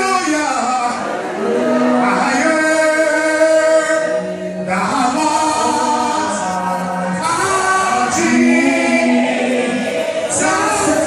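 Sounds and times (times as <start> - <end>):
congregation singing a gospel song: 0.0 - 11.0.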